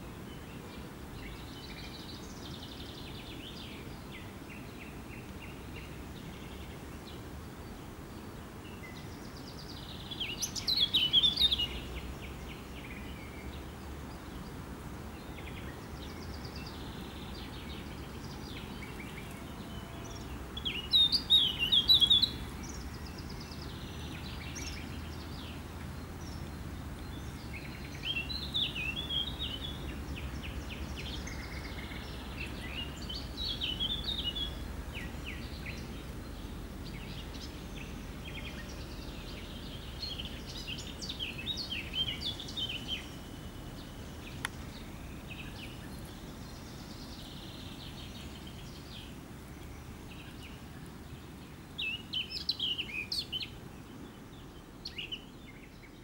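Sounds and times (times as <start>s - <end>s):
songbirds chirping and warbling: 0.0s - 56.0s.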